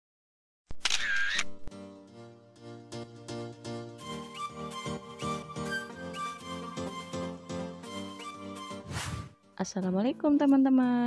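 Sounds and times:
camera shutter click and whir: 0:00.7 - 0:01.7
soft intro music: 0:01.7 - 0:11.0.

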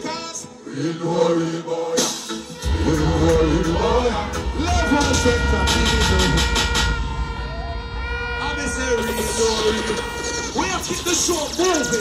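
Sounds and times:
long steady horn note: 0:02.6 - 0:12.0
low bass rumble: 0:02.6 - 0:12.0.

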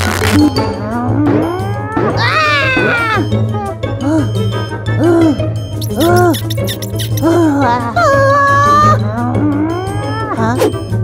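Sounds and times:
background music: 0:00.0 - 0:11.0
cartoon character whining cry: 0:01.9 - 0:03.8, 0:07.1 - 0:10.6.

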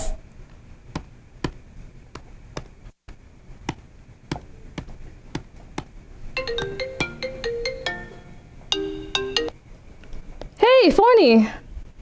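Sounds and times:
phone ringing electronic melody: 0:06.4 - 0:09.5.

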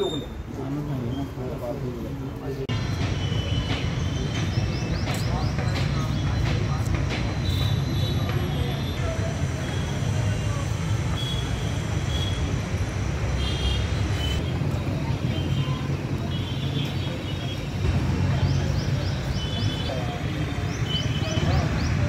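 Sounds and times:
road traffic rumble: 0:00.0 - 0:22.0.

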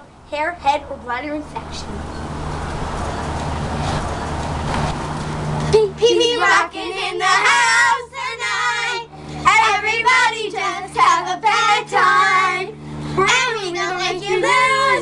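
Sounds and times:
children singing together: 0:06.0 - 0:15.0.

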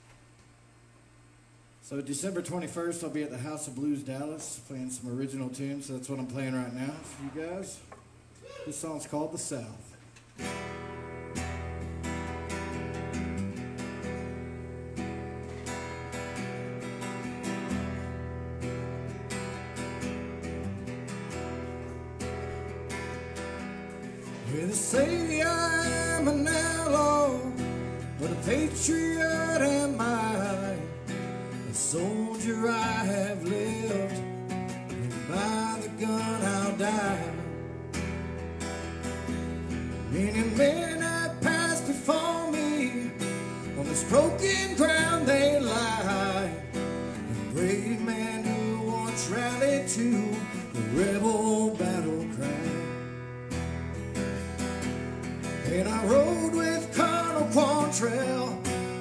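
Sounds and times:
acoustic guitar strumming: 0:06.1 - 0:08.8, 0:10.3 - 0:59.0
man singing country-style: 0:24.2 - 0:37.6, 0:40.0 - 0:53.2, 0:55.5 - 0:59.0.

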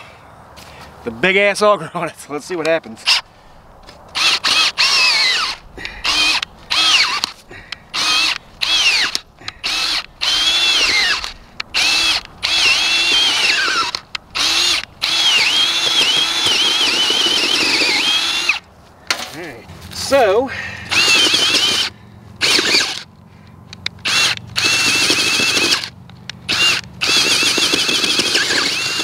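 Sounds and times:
cordless drill motor whine: 0:04.2 - 0:07.3, 0:07.9 - 0:18.6, 0:20.9 - 0:23.1, 0:24.0 - 0:29.0.

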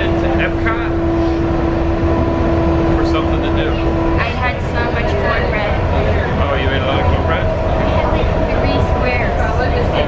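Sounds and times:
motor whine: 0:00.0 - 0:10.0
vehicle cabin rumble: 0:00.0 - 0:10.0.

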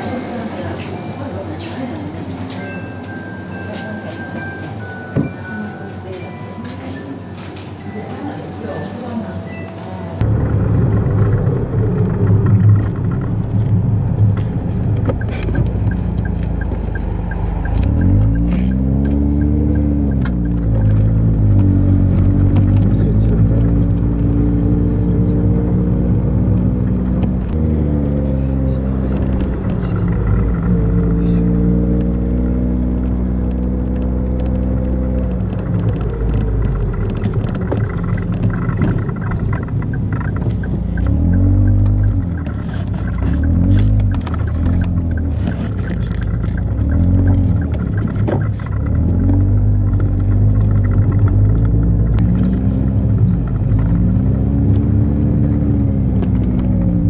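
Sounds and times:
road noise: 0:00.0 - 0:57.0
car engine revving: 0:10.2 - 0:57.0.

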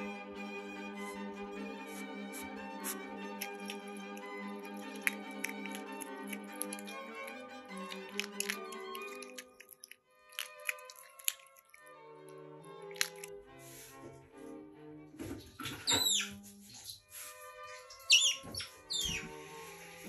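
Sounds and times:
background music: 0:00.0 - 0:20.0
otter chirping: 0:15.8 - 0:17.0, 0:17.8 - 0:19.3.

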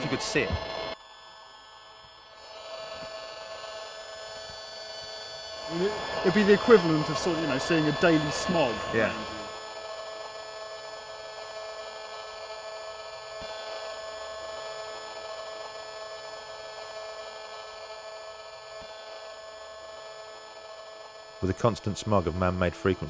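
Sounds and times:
steady electronic buzz: 0:00.0 - 0:23.0.

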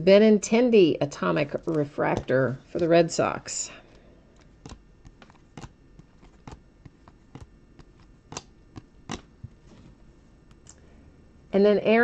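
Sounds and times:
cards clicking as flipped: 0:04.4 - 0:09.3.

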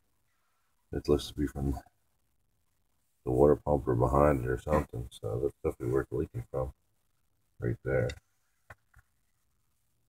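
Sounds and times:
person speaking: 0:03.3 - 0:06.7.

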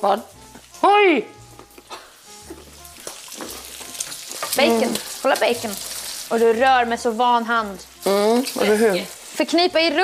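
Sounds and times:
bacon sizzling in a pan: 0:00.0 - 0:10.0
soft background music: 0:00.0 - 0:10.0.

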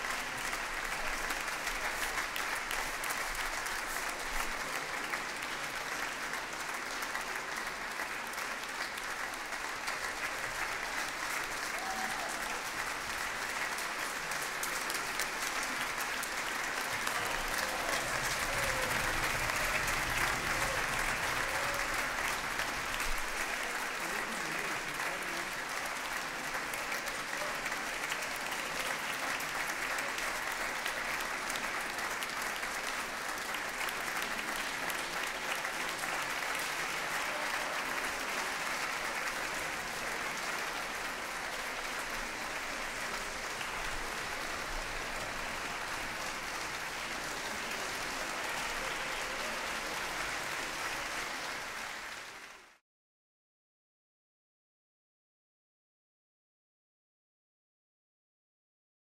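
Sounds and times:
audience applauding: 0:00.0 - 0:52.8.

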